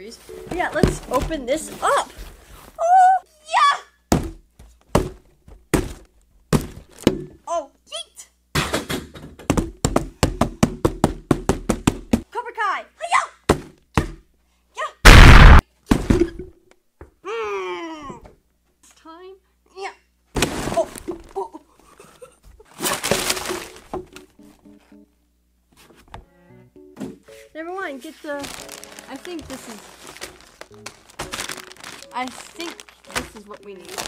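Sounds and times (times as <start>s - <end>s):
cardboard box thunks and knocks: 0.5s - 2.6s, 4.1s - 7.4s, 20.4s - 21.3s, 22.9s - 24.2s, 29.4s - 32.0s
loud burst of noise: 15.1s - 15.6s.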